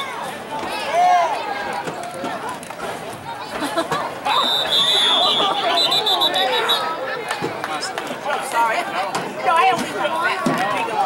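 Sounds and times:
outdoor background noise: 0.0s - 11.0s
people shouting: 4.2s - 7.0s.

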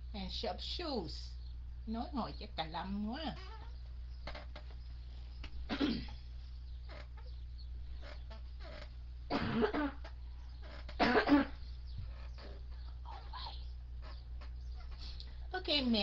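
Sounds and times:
steady low hum: 0.0s - 16.0s
person coughing: 5.7s - 6.2s, 9.3s - 10.0s, 11.0s - 11.6s.

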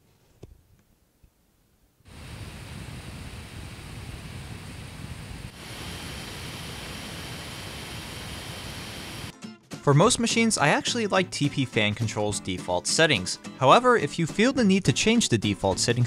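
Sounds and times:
faint high whine: 2.1s - 9.3s
laptop fan air rush: 2.1s - 9.3s.

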